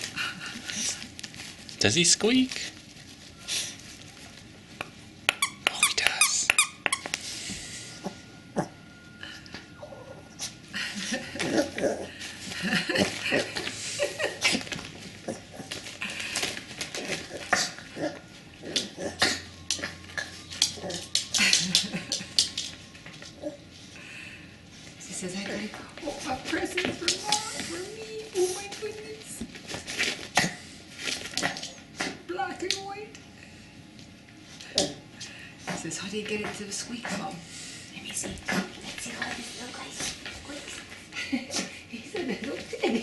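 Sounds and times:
dog toy squeaking: 5.3s - 7.1s.

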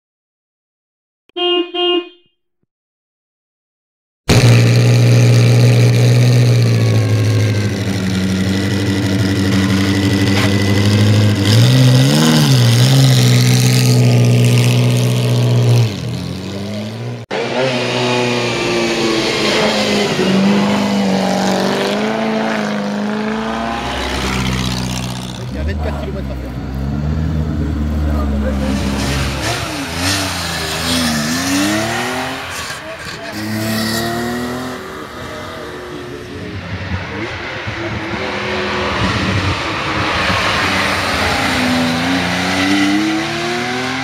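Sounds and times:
racing car engine revving: 4.3s - 44.0s.

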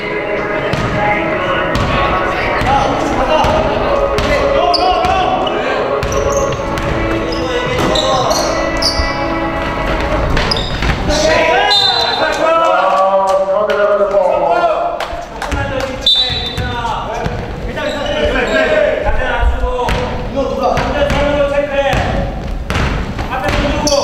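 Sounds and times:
players calling out: 0.2s - 22.3s
basketball bouncing on wooden floor: 6.0s - 7.9s, 9.6s - 11.1s, 15.5s - 17.6s, 19.9s - 23.8s.

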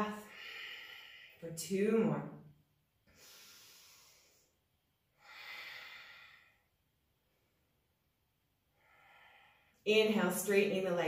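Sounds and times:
woman breathing slowly: 0.1s - 1.4s, 3.0s - 7.9s, 8.6s - 9.9s.

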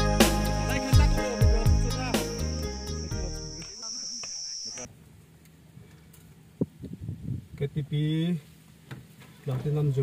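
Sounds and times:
background music: 0.0s - 3.6s
high-pitched insect drone: 0.0s - 4.9s.

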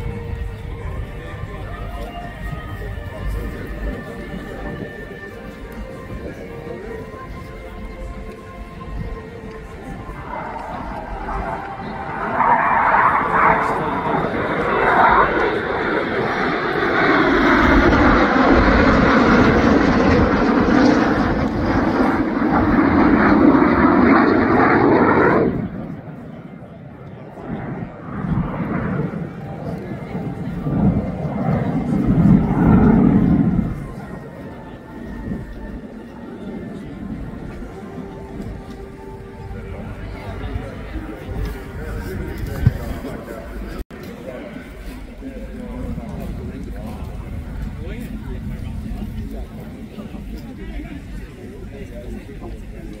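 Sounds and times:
jet aircraft engine roar: 0.0s - 53.0s.

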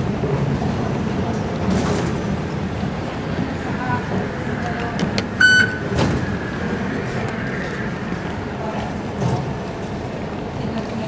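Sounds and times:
concourse hum: 0.0s - 11.0s
card reader short high beep: 5.4s - 5.9s.

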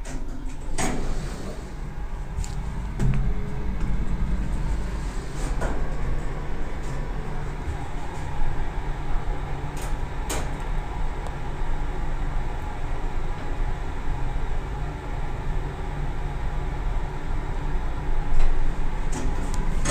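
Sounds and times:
elevator hum and rumble: 0.0s - 19.9s.

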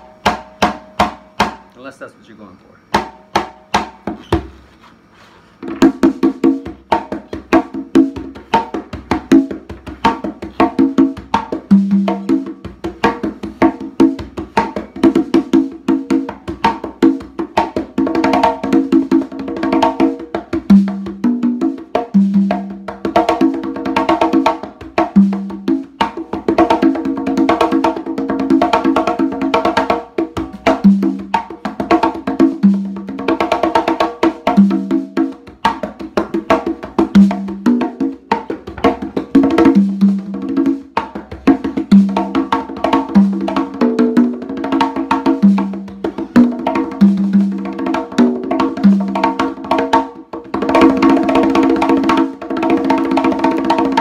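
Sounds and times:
congas slaps and tones: 0.0s - 1.9s, 2.9s - 4.6s, 5.6s - 54.0s.

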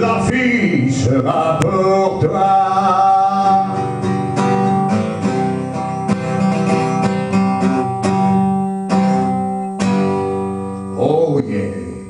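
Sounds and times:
acoustic guitar strumming chords: 0.0s - 12.0s.

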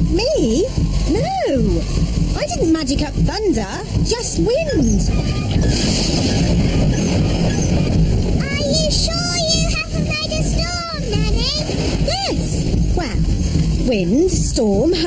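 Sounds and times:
strong wind with deep rumble: 0.0s - 15.0s
wavering pitched sounds: 0.0s - 15.0s.

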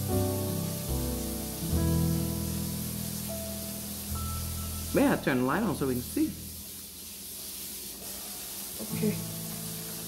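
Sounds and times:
faint hiss: 0.0s - 10.0s
person speaking: 4.9s - 6.5s.

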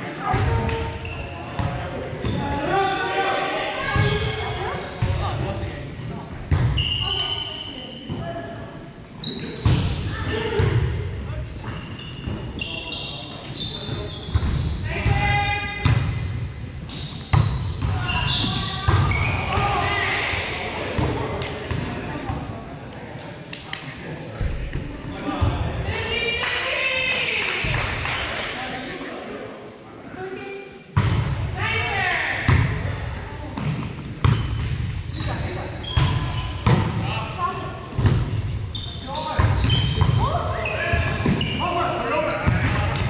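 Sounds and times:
players calling and chattering: 0.0s - 43.0s
sneaker squeaks: 0.3s - 2.6s, 3.4s - 9.8s, 11.6s - 19.6s, 22.2s - 23.0s, 24.4s - 25.1s, 33.6s - 43.0s.

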